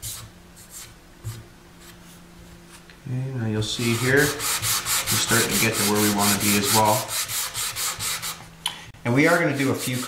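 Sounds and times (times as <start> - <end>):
sanding block strokes on wood: 3.8 - 8.4, 9.3 - 10.0.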